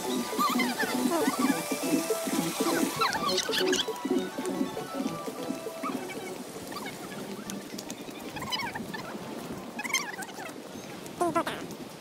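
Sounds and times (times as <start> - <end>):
high sweeping chirps: 0.0 - 6.3.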